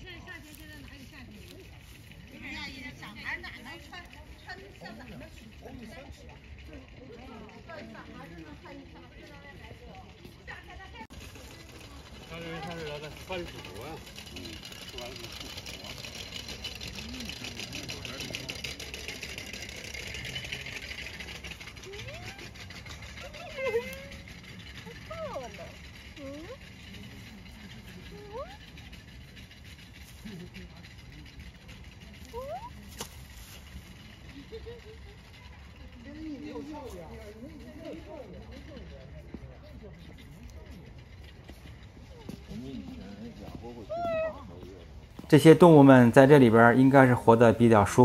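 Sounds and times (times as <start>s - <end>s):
low murmuring voices: 0.0s - 48.0s.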